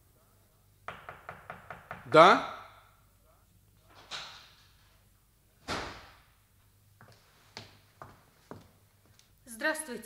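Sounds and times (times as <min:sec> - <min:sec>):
quick knocks on a door: 0:00.9 - 0:02.2.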